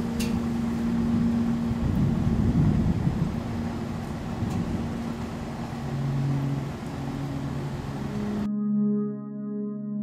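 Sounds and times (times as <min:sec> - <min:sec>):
steady rumbling noise: 0:00.0 - 0:08.5
slow ambient music low notes: 0:00.0 - 0:10.0.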